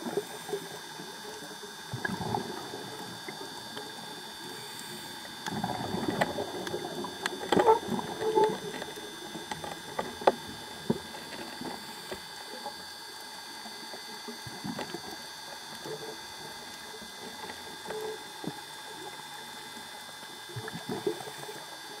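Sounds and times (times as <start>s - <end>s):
steady thin whine: 0.0s - 22.0s.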